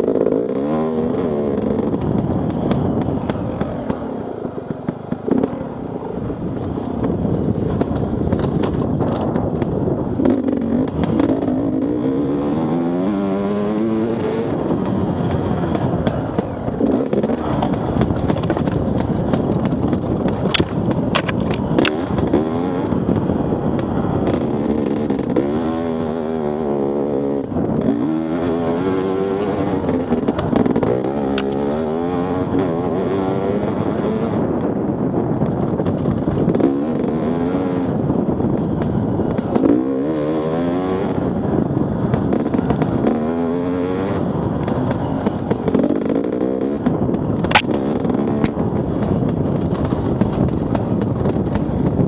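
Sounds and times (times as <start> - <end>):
dirt bike engine revving: 0.0 - 4.1, 9.5 - 18.4, 21.6 - 34.5, 36.5 - 49.0.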